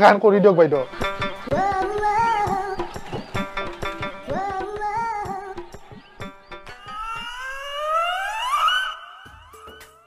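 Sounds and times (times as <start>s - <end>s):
rising siren-like tone: 6.6s - 10.0s.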